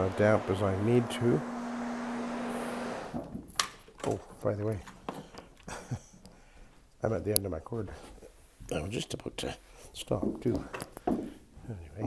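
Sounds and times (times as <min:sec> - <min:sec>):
carpet cleaning machine humming: 0:00.0 - 0:03.2.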